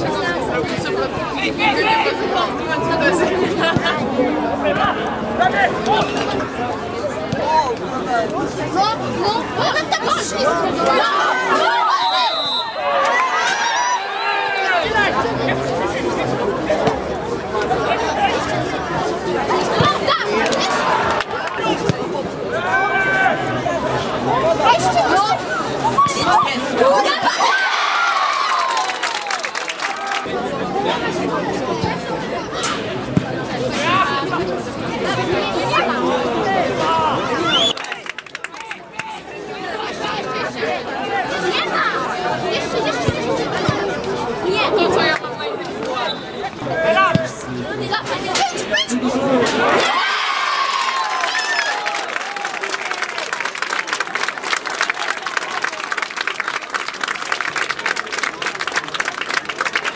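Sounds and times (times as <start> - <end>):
people shouting and chattering: 0.0 - 59.9
players shouting: 9.4 - 15.4, 19.4 - 30.4, 48.1 - 53.3.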